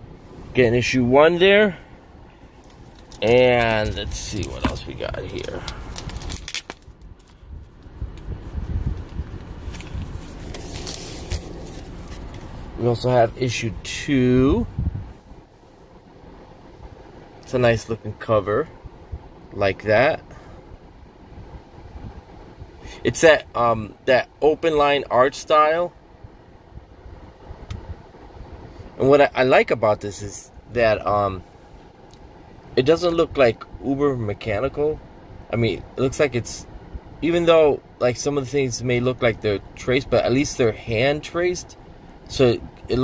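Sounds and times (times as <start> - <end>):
car interior rumble: 0.0 - 43.0
phone handling rumble: 2.6 - 12.5
plastic bags rustling: 2.8 - 7.3.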